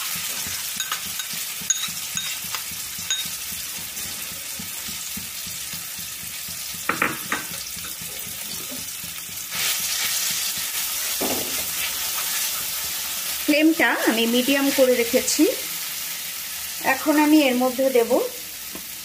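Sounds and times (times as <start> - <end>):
paste sizzling in hot oil: 0.0 - 19.0
spatula stirring paste: 7.5 - 13.2.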